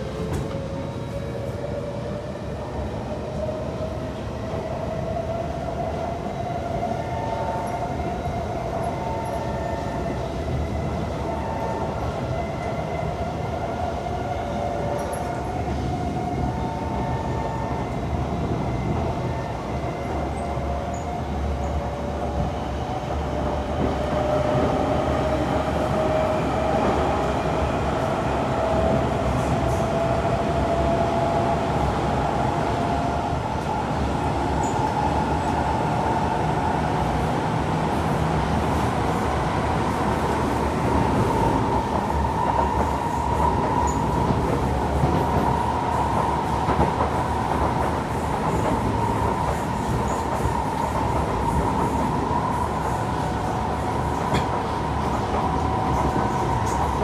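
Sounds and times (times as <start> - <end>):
train wheel and rail rumble: 0.0 - 57.0.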